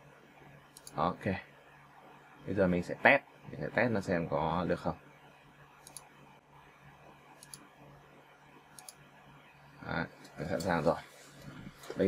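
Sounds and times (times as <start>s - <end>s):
computer mouse clicks: 0.7s - 1.0s, 5.8s - 6.1s, 7.4s - 7.7s, 8.7s - 9.1s.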